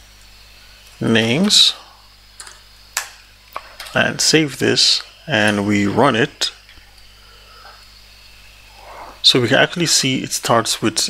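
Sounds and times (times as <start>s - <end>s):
electrical hum: 0.0s - 11.0s
low steady hiss: 0.0s - 11.0s.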